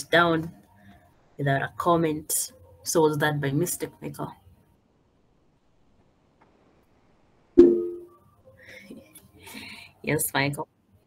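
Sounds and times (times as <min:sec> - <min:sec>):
short musical tone: 0:07.6 - 0:08.1.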